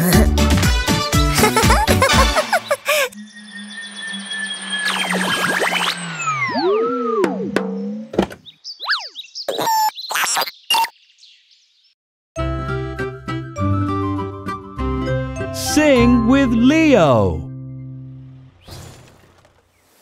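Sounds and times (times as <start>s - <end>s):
children's song music: 0.0s - 2.8s, 12.4s - 18.2s
held electronic tone: 3.1s - 7.6s.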